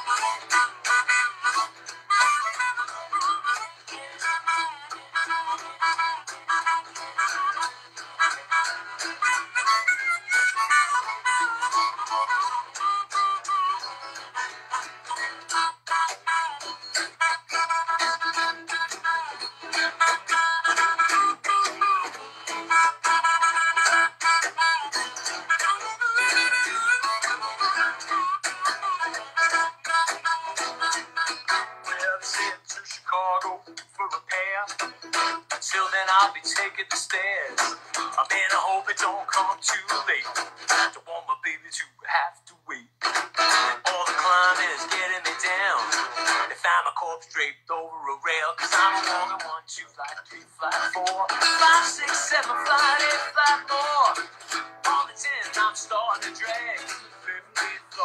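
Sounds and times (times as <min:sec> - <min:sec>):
harmonica playing: 0:00.0 - 0:33.3, 0:34.2 - 0:40.9, 0:43.0 - 0:46.6, 0:48.6 - 0:49.6, 0:50.9 - 0:58.0
strummed acoustic guitar: 0:00.0 - 0:42.2, 0:42.8 - 0:58.0.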